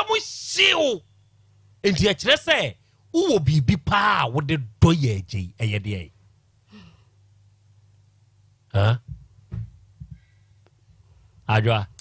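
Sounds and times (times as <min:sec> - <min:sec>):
faint low hum: 0:00.0 - 0:12.0
soft low thuds: 0:09.0 - 0:10.3.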